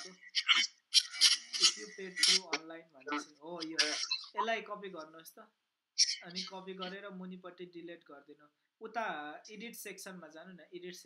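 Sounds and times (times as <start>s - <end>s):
voice on video call: 0.0s - 11.0s.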